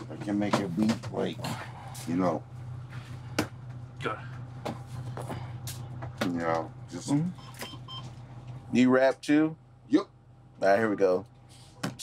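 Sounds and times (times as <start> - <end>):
low hum inside ambulance: 0.0 - 12.0.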